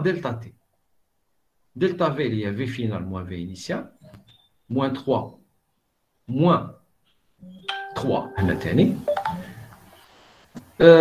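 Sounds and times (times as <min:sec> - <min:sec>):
man's voice in fragments: 0:00.0 - 0:00.6, 0:01.7 - 0:04.0, 0:04.7 - 0:05.4, 0:06.2 - 0:06.8, 0:07.9 - 0:09.1, 0:10.8 - 0:11.0
electronic beep: 0:07.4 - 0:09.7.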